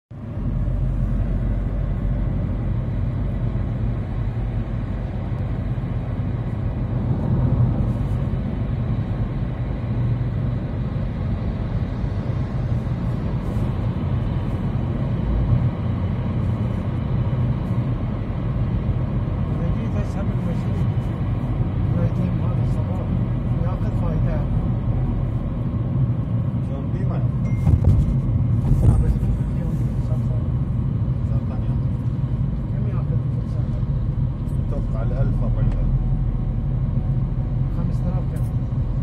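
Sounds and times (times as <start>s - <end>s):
road and engine rumble: 0.1s - 39.0s.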